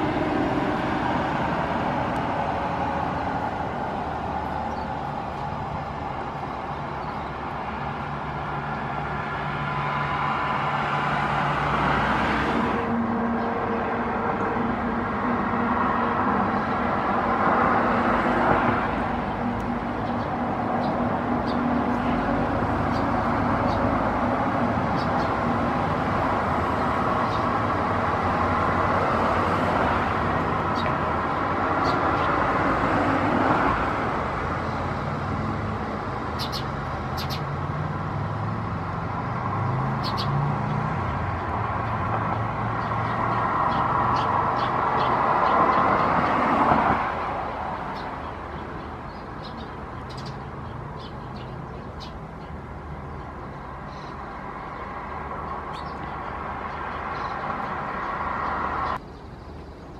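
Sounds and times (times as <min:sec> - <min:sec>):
road traffic noise: 0:00.0 - 0:59.9
vehicles passing: 0:00.0 - 0:59.9.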